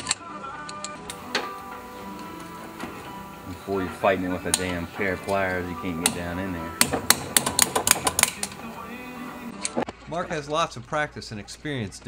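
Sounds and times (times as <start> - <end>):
background music: 0.0 - 10.5
metal-on-metal clacks: 6.0 - 8.7.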